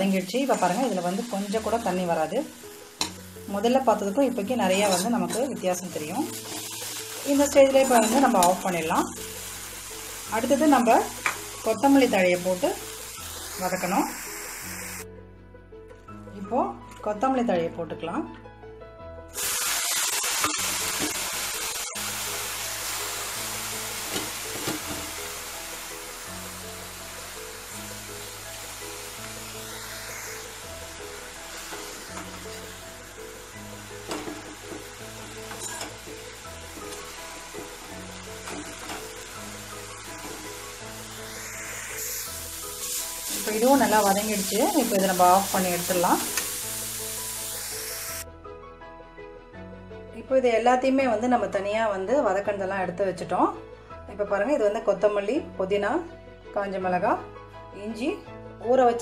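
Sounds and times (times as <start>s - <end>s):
leaves sizzling in hot oil: 0.0s - 15.0s, 19.3s - 48.2s
background music: 0.0s - 59.0s.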